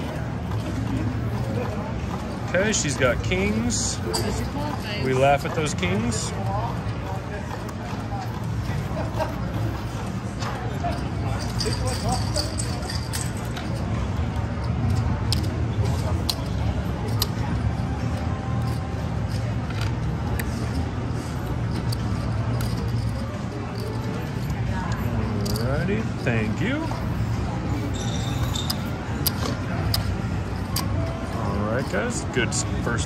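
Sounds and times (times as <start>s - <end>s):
faint music: 0.0s - 33.0s
indistinct voices: 0.0s - 33.0s
casino chips clicking: 10.4s - 32.1s.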